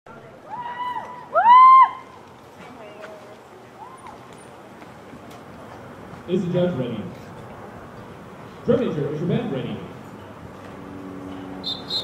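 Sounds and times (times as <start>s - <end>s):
low wash of distant noise: 0.1s - 12.0s.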